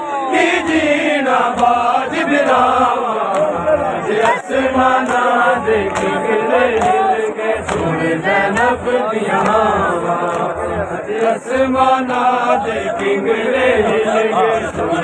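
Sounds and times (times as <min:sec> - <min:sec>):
crowd of men chanting: 0:00.0 - 0:15.0
hands slapping chests: 0:00.6 - 0:11.3.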